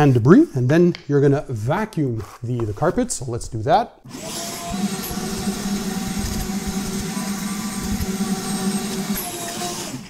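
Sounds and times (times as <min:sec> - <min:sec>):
shop vacuum running: 0:04.1 - 0:10.0.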